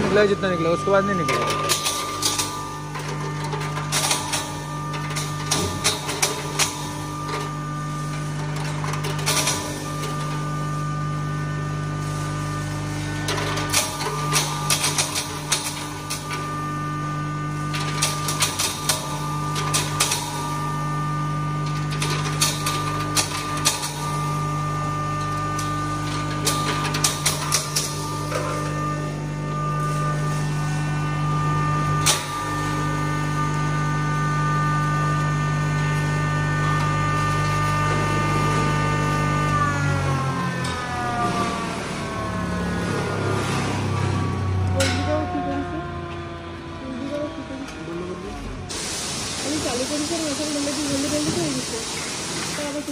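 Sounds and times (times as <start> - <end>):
dried pieces cracking in grinder: 0.0 - 43.4
grinder humming: 0.0 - 52.9.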